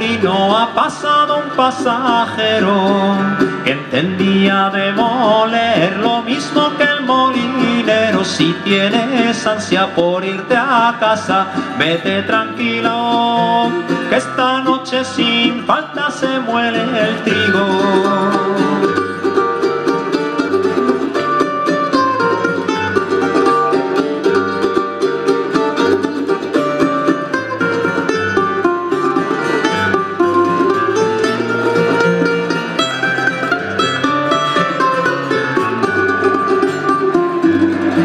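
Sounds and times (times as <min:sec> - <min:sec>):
acoustic guitar accompaniment: 0:00.0 - 0:38.0
mandolin picked melody: 0:00.0 - 0:38.0.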